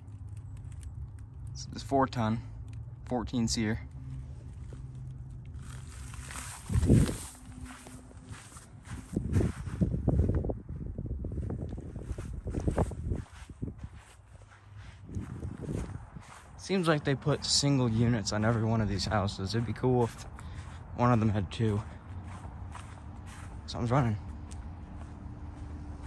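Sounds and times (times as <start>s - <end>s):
footsteps crunching on dry grass: 3.4s - 10.5s, 11.3s - 26.0s.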